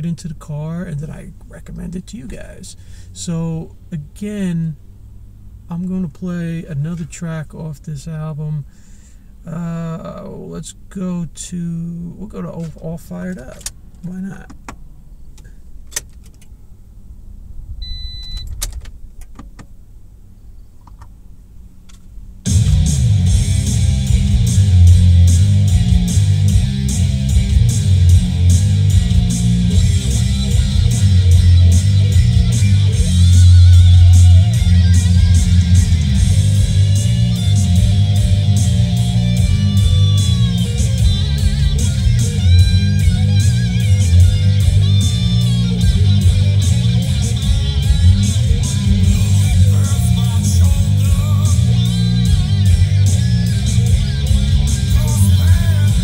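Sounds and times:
hard rock on car stereo: 0:00.0 - 0:04.8, 0:11.6 - 0:14.8, 0:22.4 - 0:56.0
short beep: 0:17.8 - 0:18.5.

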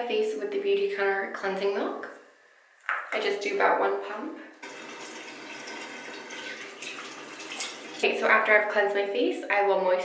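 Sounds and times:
faucet running: 0:04.6 - 0:08.1.

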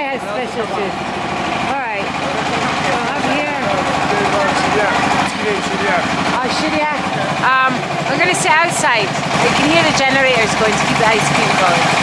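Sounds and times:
generator engine running: 0:00.0 - 0:12.0
voices talking: 0:00.0 - 0:12.0.

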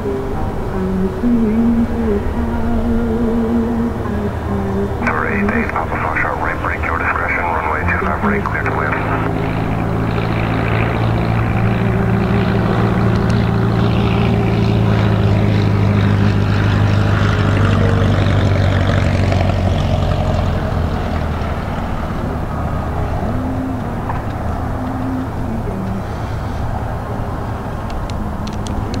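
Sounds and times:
propeller plane engine: 0:00.0 - 0:29.0.

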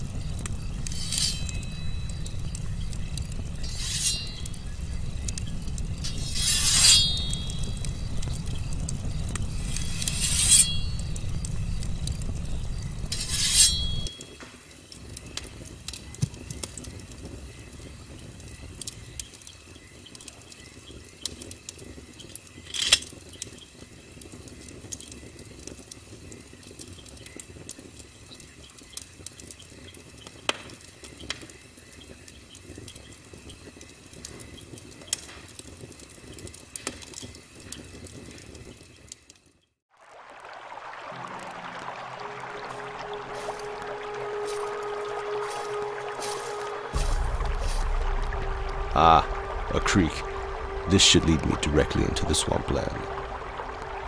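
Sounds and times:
heavy low rumble: 0:00.0 - 0:03.7, 0:04.3 - 0:06.3, 0:07.2 - 0:10.2, 0:10.8 - 0:13.2, 0:42.6 - 0:54.0
bonfire crackling and popping: 0:00.0 - 0:54.0
sharp metallic scrapes: 0:00.4 - 0:14.4, 0:22.7 - 0:23.1.

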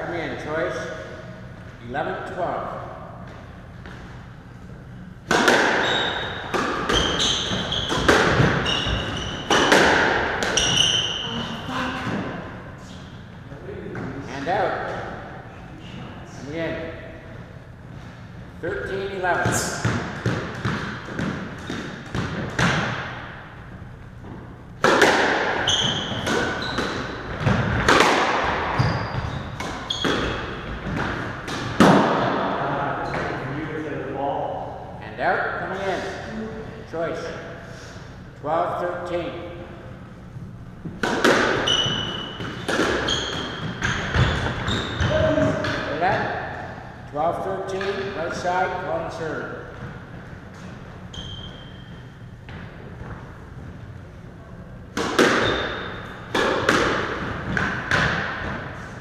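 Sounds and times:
squash ball hits: 0:05.2 - 0:11.2, 0:19.4 - 0:23.4, 0:24.8 - 0:33.4, 0:40.8 - 0:46.3, 0:54.9 - 0:58.8
shoes squeaking on wooden floor: 0:05.8 - 0:09.8, 0:10.5 - 0:11.5, 0:25.6 - 0:27.5, 0:28.6 - 0:30.9, 0:41.5 - 0:45.6, 0:51.1 - 0:52.1.

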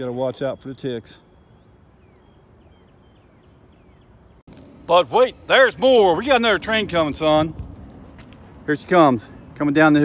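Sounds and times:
distant bird chirping: 0:00.0 - 0:10.0.

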